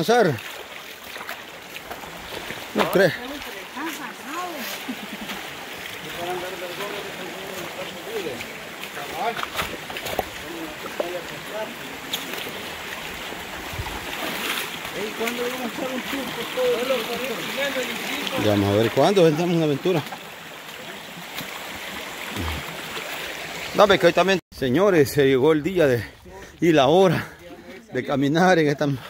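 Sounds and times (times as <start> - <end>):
footsteps splashing through water: 0.0 - 23.8
stream running over stones: 0.0 - 29.0.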